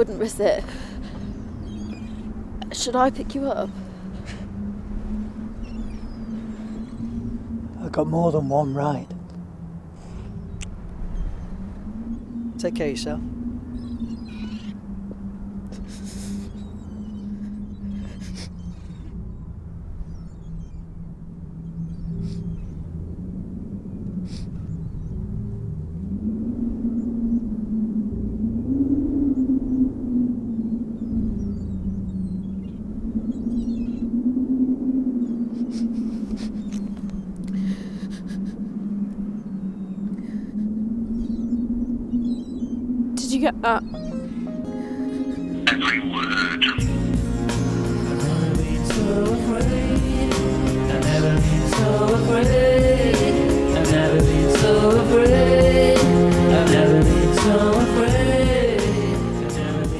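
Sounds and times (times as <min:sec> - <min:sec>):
wind rumble on microphone: 0:00.0 - 0:44.5, 0:45.1 - 0:59.9
low musical drone: 0:00.0 - 0:59.9.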